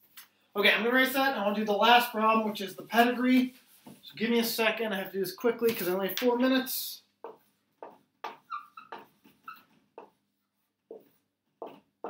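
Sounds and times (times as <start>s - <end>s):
marker drawing on whiteboard: 7.2s - 12.0s
marker squeak: 8.2s - 9.8s.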